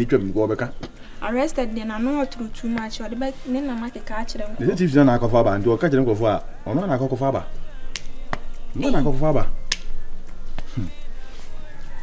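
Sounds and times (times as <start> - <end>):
finger snap: 7.9 - 8.6, 9.7 - 10.8.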